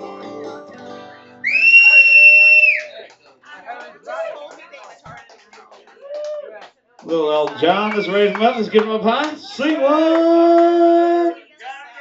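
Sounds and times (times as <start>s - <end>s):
loud piercing human whistle: 1.4s - 2.9s.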